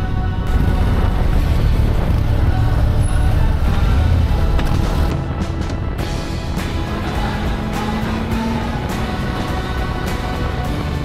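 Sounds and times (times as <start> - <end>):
wind noise: 0.0 - 10.6
background music: 0.0 - 11.0
motorcycle engine rumble: 0.0 - 11.0.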